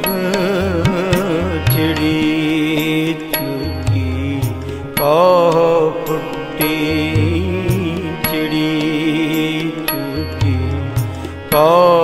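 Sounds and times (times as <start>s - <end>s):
devotional melody: 0.0s - 12.0s.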